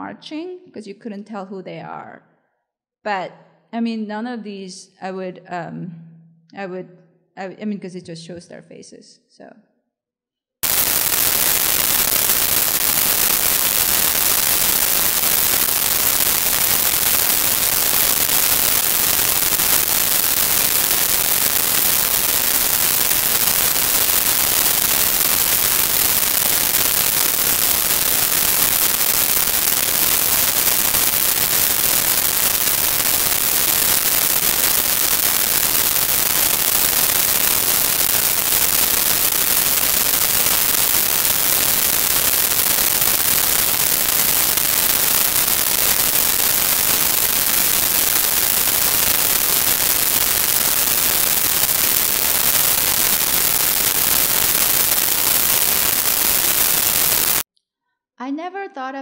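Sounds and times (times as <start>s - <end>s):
loud static hiss: 10.6s - 57.5s.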